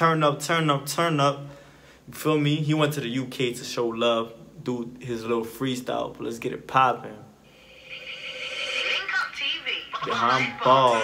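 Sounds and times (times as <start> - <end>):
steady high tone: 7.4 - 11.0
person speaking: 9.7 - 11.0.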